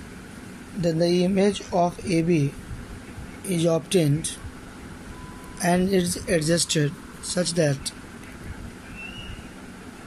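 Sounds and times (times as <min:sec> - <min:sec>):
faint high whistle-like tone: 0:05.1 - 0:05.6, 0:08.9 - 0:09.5.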